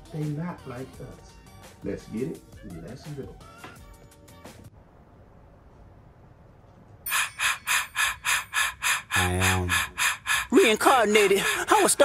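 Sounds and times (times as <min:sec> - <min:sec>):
rhythmic gasping breaths: 0:07.1 - 0:12.0.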